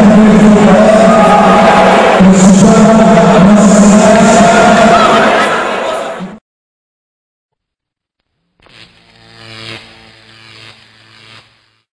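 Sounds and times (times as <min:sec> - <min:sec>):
buzzy low drone with hiss: 0:08.4 - 0:11.9.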